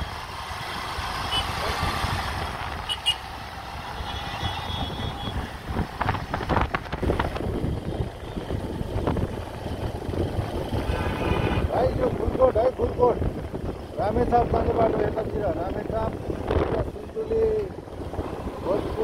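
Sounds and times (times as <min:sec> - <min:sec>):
motorcycle engine running: 0:00.0 - 0:19.0
wind rumbling on microphone: 0:00.7 - 0:02.9, 0:04.4 - 0:19.0.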